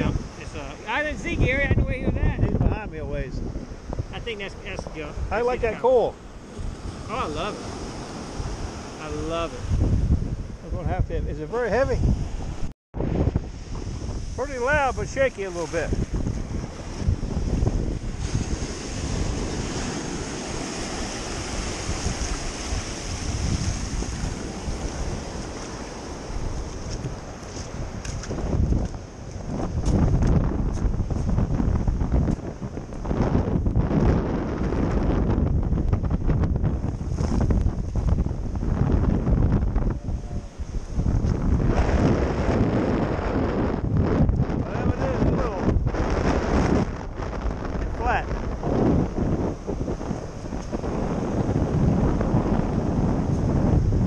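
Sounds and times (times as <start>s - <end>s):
surf washing on beach: 0.0s - 54.0s
wind buffeting microphone: 0.0s - 54.0s.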